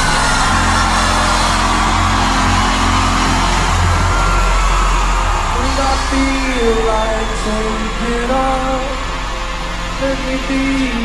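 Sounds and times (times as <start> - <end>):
crowd cheering and screaming: 0.0 - 11.0
live band holding a chord: 0.0 - 11.0.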